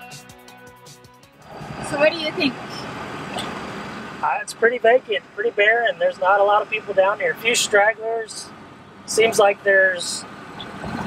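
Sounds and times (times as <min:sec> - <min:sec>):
background music: 0:00.0 - 0:02.8
road and engine noise in cabin: 0:01.3 - 0:11.0.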